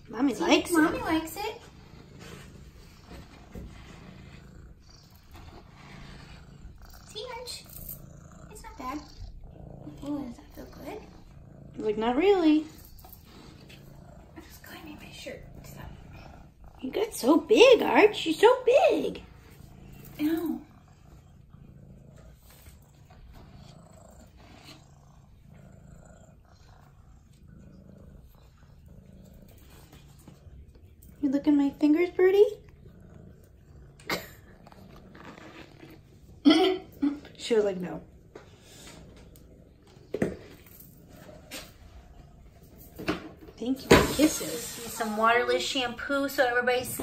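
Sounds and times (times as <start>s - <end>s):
cat purring: 0.0s - 47.0s
brush strokes through fur: 44.0s - 45.8s.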